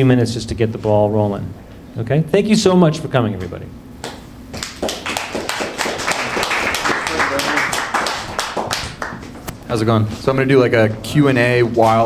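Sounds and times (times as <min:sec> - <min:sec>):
audience applauding: 0:04.6 - 0:09.4.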